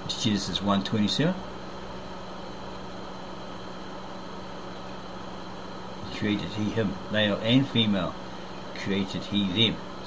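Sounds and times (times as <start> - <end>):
steady background hum and hiss: 0.0 - 10.0.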